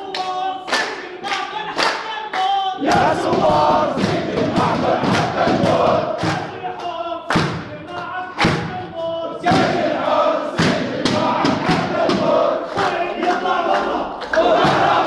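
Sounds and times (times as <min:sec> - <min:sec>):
crowd chanting slogans: 0:00.0 - 0:15.0
sharp loud beats: 0:01.8 - 0:15.0.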